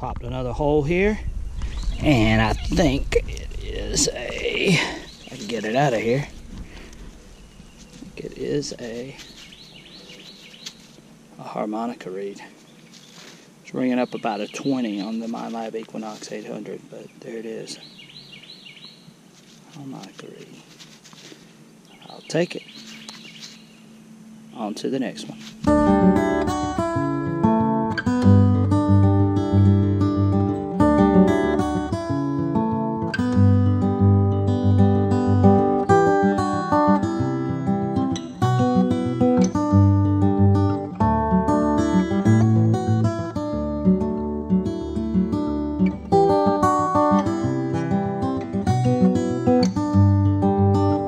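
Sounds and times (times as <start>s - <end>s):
acoustic guitar strumming: 1.5s - 11.9s, 23.4s - 51.0s.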